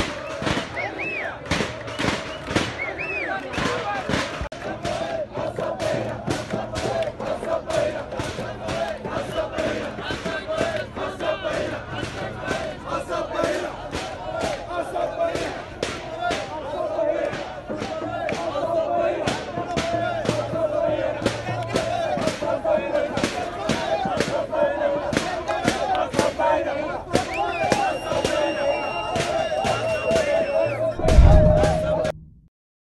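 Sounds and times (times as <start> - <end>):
crowd shouting and chanting: 0.0 - 32.2
sharp beat: 30.9 - 32.5.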